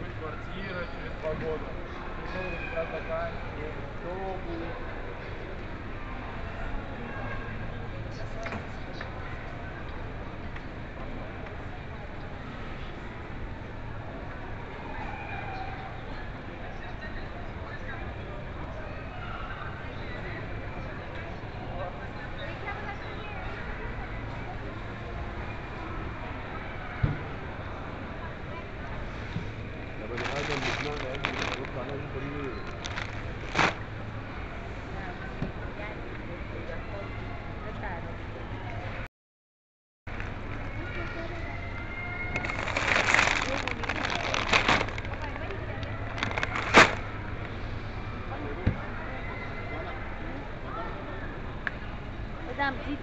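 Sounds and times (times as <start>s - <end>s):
hubbub of shoppers' voices: 0.0s - 39.1s, 40.1s - 53.0s
general store noise: 29.0s - 34.6s, 41.3s - 47.6s
plastic bag crinkling: 30.1s - 31.9s, 32.6s - 33.8s, 42.4s - 45.4s, 46.0s - 47.1s.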